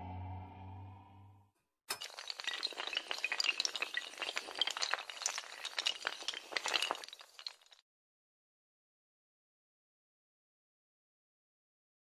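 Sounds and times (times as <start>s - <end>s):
low musical drone: 0.0s - 1.4s
glass clinking and shattering: 1.9s - 7.8s.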